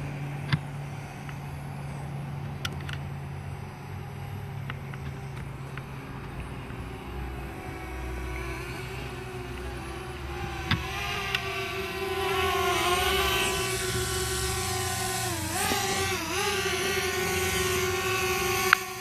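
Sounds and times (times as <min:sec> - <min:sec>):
drone propellers whining: 0:00.0 - 0:19.0.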